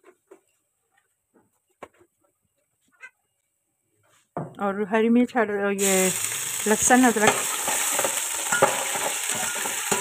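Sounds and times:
spices crackling in hot oil: 5.8s - 10.0s.

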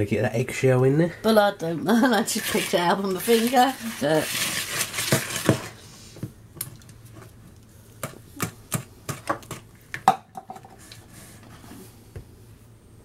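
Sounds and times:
whisk scraping in bowl: 2.2s - 5.8s.

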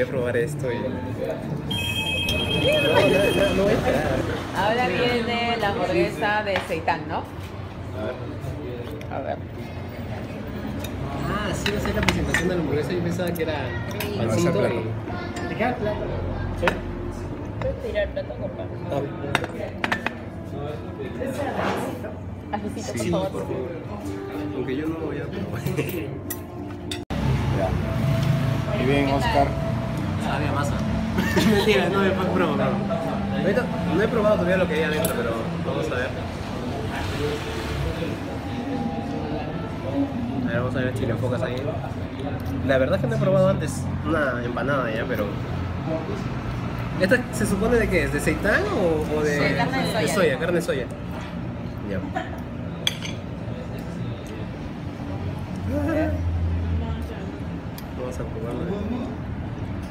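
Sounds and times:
cutlery clinking on a plate: 52.8s - 53.3s.

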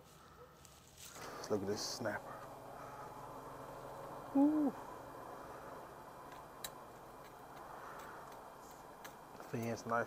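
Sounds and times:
charcoal grill crackling: 0.0s - 10.0s
grill hissing: 0.0s - 10.0s.

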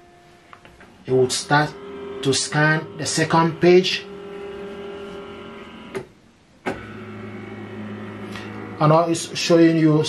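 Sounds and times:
scanner motor whine: 1.1s - 6.0s, 6.7s - 9.6s.

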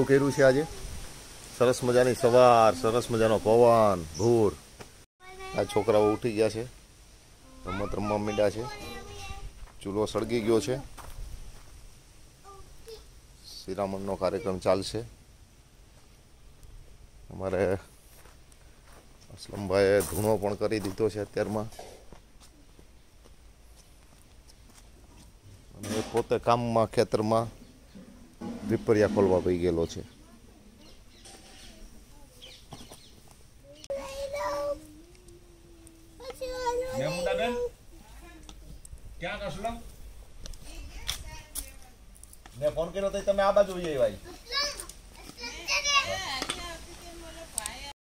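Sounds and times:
young child's voice: 5.2s - 6.2s, 7.4s - 9.6s, 12.4s - 13.1s, 33.6s - 37.8s, 40.6s - 42.0s, 44.2s - 47.0s.

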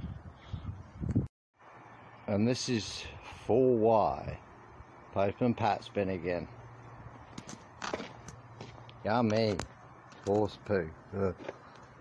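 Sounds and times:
footsteps on paved path: 7.2s - 10.6s, 11.3s - 12.0s.

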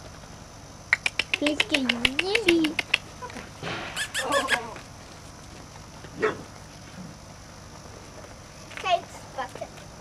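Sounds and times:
dog yipping: 4.0s - 4.8s.

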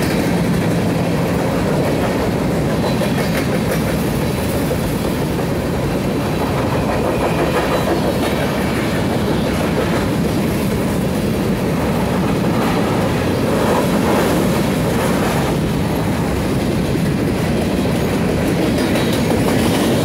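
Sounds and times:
train wheels running on rails: 0.0s - 20.0s.

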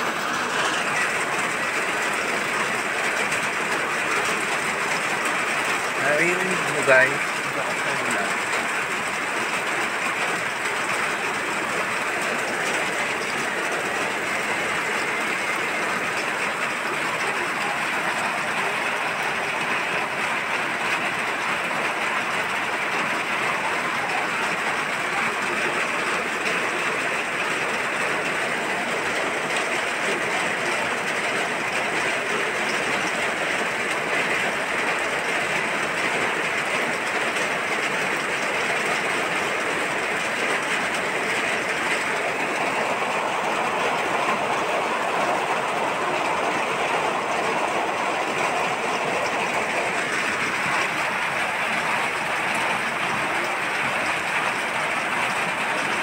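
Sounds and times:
heavy rain pouring: 0.0s - 56.0s.

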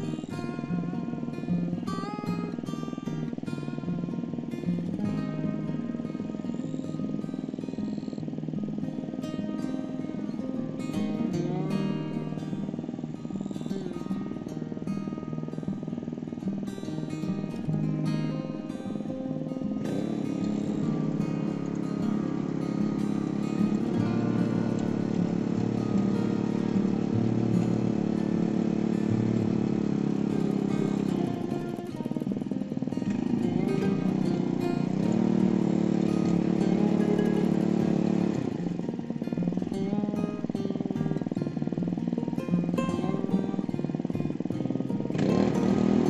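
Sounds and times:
tiller engine churning soil: 0.0s - 46.0s.

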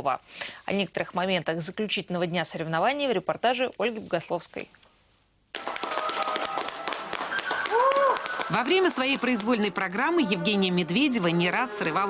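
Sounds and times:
applause: 5.6s - 9.4s.

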